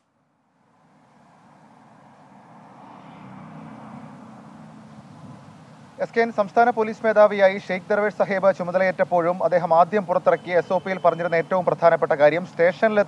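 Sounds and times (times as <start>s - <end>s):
passing vehicle engine and tyres: 0.0s - 13.0s.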